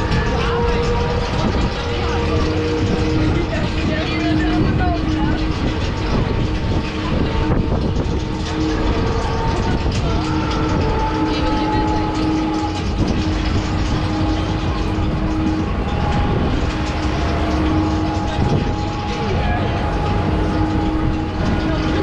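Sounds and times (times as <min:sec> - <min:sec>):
funfair ride rumble: 0:00.0 - 0:22.0
riders' voices: 0:00.0 - 0:22.0.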